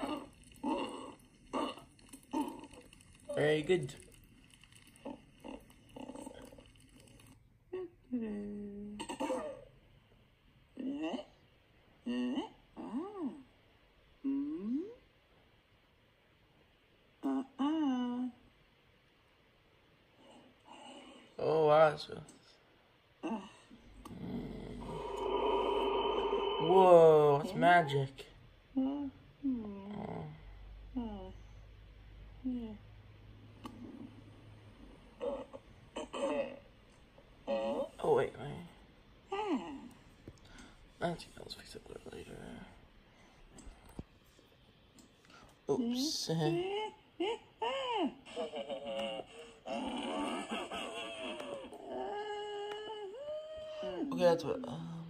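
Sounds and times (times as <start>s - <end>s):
person vocalizing wordlessly: 14.2s - 15.0s.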